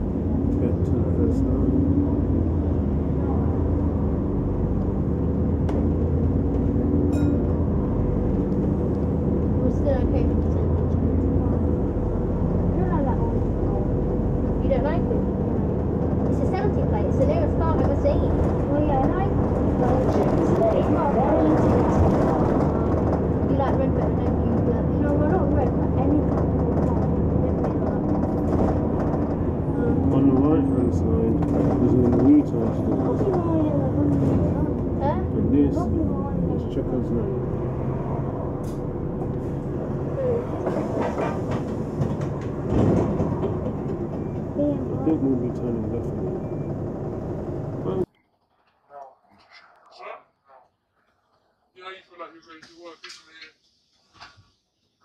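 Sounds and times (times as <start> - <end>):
bus engine drone: 0.0 - 48.1
voices chatting: 9.6 - 37.9, 44.1 - 48.1.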